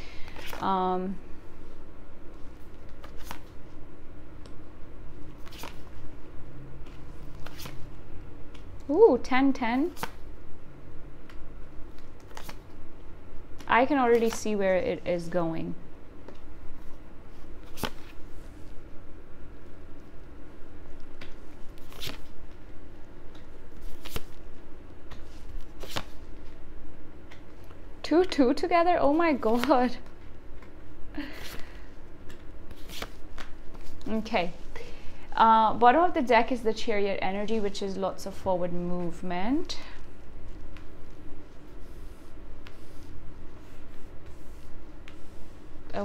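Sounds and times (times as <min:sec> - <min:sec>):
cards being handled: 0:00.2 - 0:00.7, 0:02.6 - 0:03.6, 0:05.3 - 0:06.0, 0:06.8 - 0:07.8, 0:11.3 - 0:12.8, 0:17.6 - 0:18.3, 0:21.0 - 0:22.6, 0:23.2 - 0:26.6, 0:29.4 - 0:30.8, 0:32.2 - 0:34.8.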